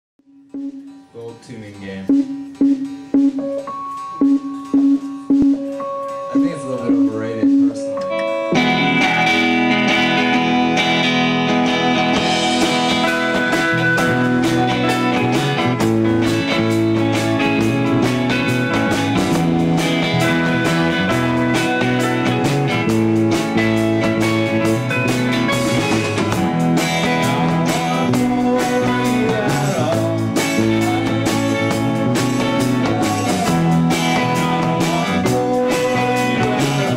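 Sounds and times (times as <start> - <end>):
drum kit steady beat: 0.2 - 36.9
live rock band playing: 0.2 - 36.9.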